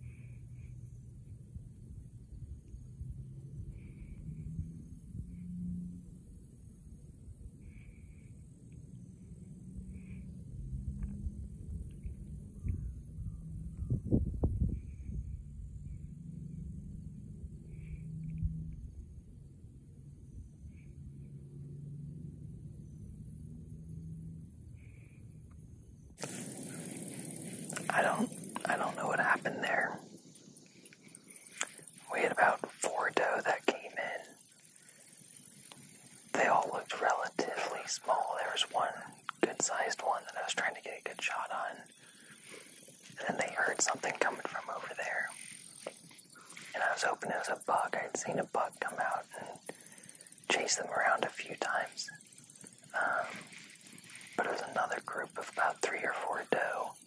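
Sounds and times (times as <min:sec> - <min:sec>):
man whispering: 0:27.7 - 0:30.1, 0:31.4 - 0:34.4, 0:36.3 - 0:42.2, 0:43.1 - 0:46.0, 0:46.6 - 0:52.2, 0:52.8 - 0:57.0.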